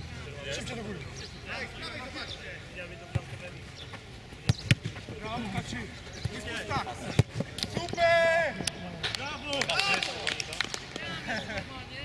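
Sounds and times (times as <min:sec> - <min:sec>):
players shouting: 0:04.8 - 0:10.3.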